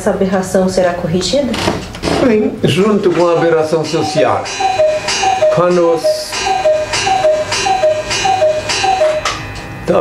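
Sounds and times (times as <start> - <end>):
cuckoo clock calling: 3.1 - 9.5.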